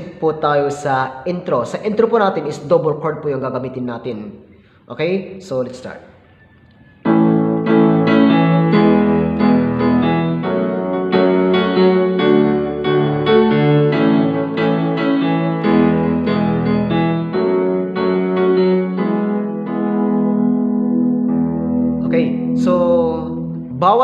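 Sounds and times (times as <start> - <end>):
digital keyboard playing piano chords: 6.2 - 24.0.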